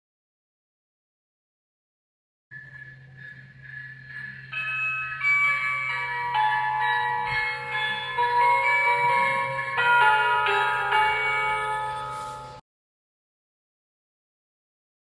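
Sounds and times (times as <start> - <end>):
bell-like electronic melody: 2.5 - 12.6.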